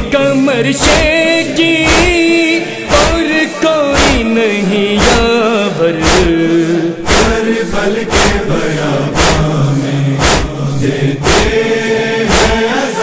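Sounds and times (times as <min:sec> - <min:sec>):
chest-beating strikes: 0:00.0 - 0:04.4, 0:05.0 - 0:08.6, 0:09.2 - 0:12.7
chorus chanting held tones: 0:00.0 - 0:13.0.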